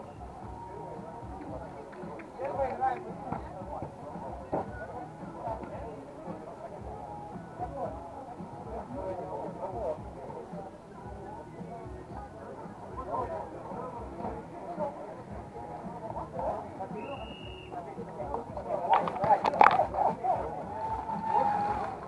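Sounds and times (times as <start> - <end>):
overlapping chatter: 0.0 - 22.0.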